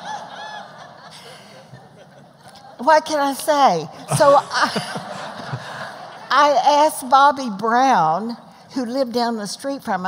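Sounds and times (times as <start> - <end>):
audience laughing: 0.0 - 2.8, 3.9 - 6.6.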